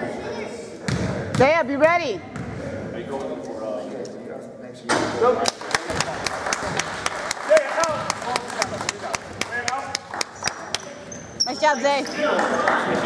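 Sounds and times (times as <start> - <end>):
basketball bouncing on court: 0.9 - 2.6.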